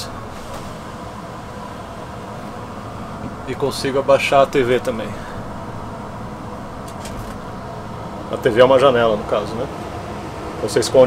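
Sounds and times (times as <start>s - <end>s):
bus interior hum: 0.0s - 11.0s.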